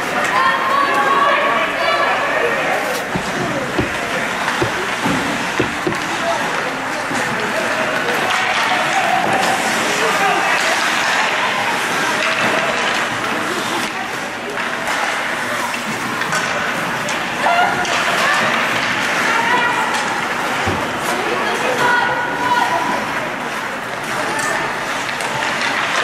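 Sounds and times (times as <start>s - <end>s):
hockey sticks and puck knocks: 2.9s - 21.9s, 23.1s - 26.0s.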